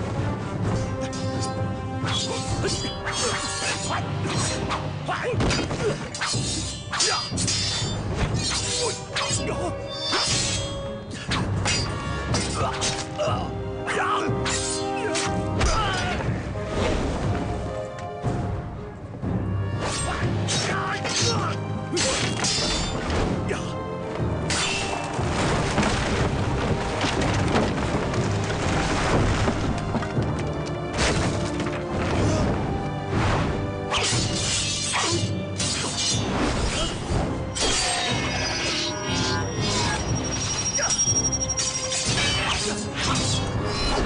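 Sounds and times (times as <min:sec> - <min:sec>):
background film music: 0:00.0 - 0:44.0
swords clashing: 0:05.4 - 0:13.1, 0:19.8 - 0:23.0, 0:24.5 - 0:25.1, 0:33.9 - 0:37.0, 0:37.6 - 0:40.0, 0:41.6 - 0:44.0.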